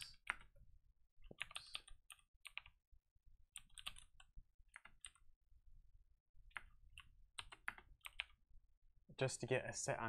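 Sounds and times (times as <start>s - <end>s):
typing on computer keyboard: 1.3s - 2.8s, 3.6s - 5.2s, 6.5s - 8.4s.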